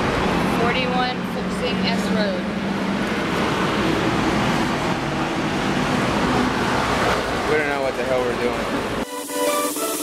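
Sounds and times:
city street traffic: 0.0s - 9.1s.

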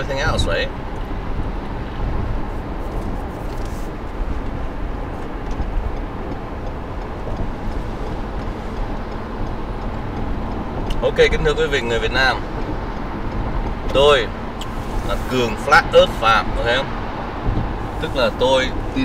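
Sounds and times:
car cabin road and engine noise: 0.0s - 19.0s.

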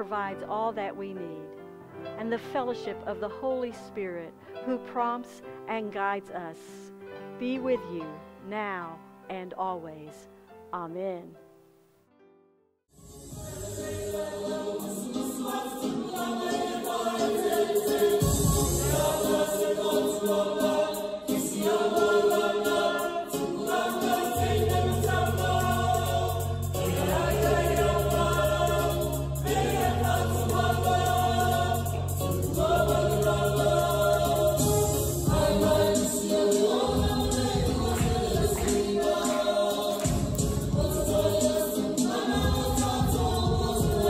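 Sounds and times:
choir singing: 13.2s - 44.0s
low sustained bass notes: 24.4s - 36.0s.

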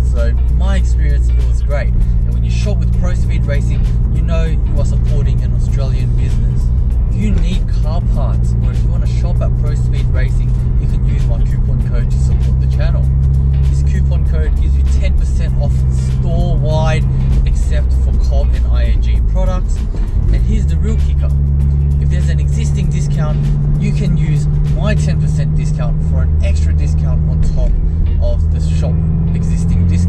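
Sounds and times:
car engine droning in cabin: 0.0s - 30.0s.

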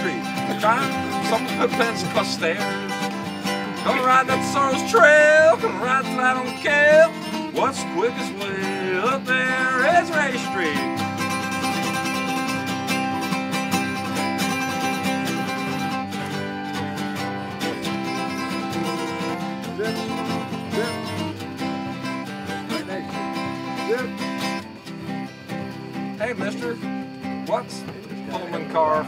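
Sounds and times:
acoustic guitar playing: 0.0s - 29.0s.

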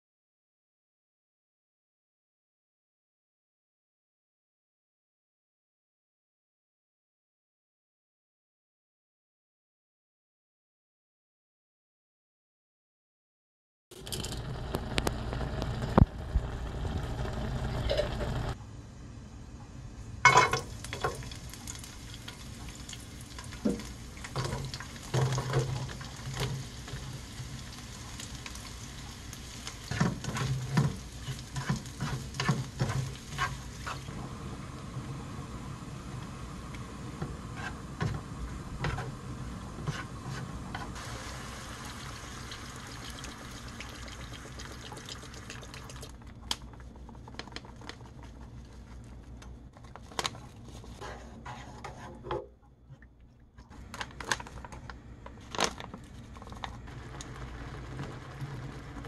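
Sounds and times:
vegetables sizzling in oil: 20.3s - 45.4s
pot bubbling: 20.3s - 52.0s, 52.8s - 59.0s.

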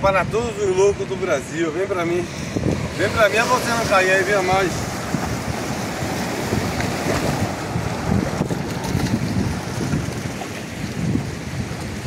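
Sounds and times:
wind rumbling on microphone: 0.0s - 12.0s
ocean surf breaking on rocks: 0.1s - 12.0s.

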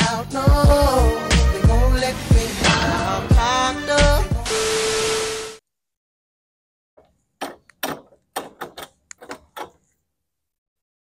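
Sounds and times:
music with singing: 0.0s - 4.6s
key turning in door lock: 7.4s - 9.8s.

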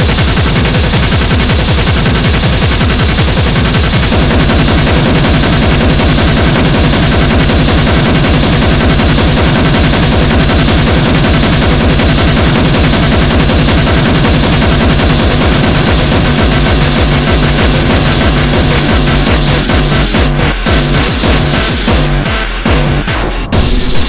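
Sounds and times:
distorted extreme metal music: 0.0s - 24.0s
very fast drum pulse: 0.0s - 24.0s.

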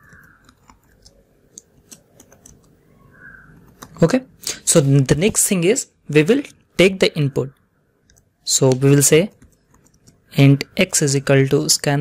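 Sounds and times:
keyboard keystrokes: 0.0s - 2.8s.

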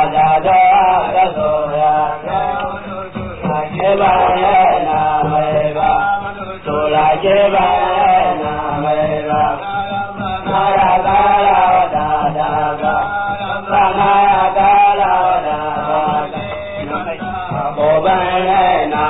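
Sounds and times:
chanted singing: 0.0s - 19.0s
instrumental accompaniment: 0.0s - 19.0s.

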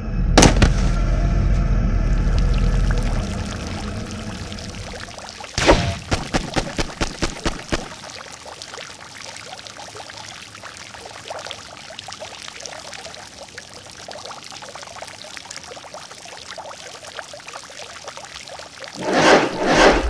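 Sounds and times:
water pouring with crackles: 2.1s - 19.0s.

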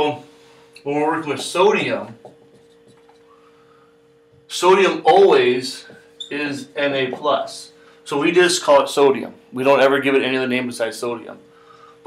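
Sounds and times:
low room hum: 0.0s - 12.0s
marker writing on whiteboard: 1.4s - 3.2s.

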